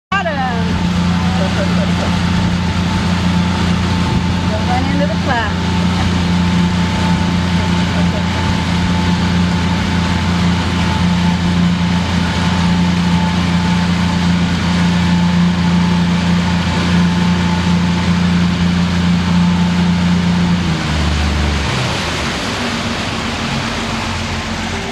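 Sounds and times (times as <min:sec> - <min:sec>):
boat engine running: 0:00.1 - 0:24.9
rush of boat wake: 0:00.1 - 0:24.9
wind: 0:00.1 - 0:24.9.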